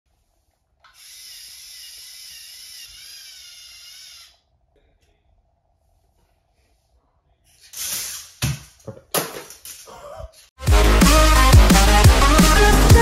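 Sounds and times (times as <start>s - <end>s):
small electric motor whining: 0.9s - 4.4s.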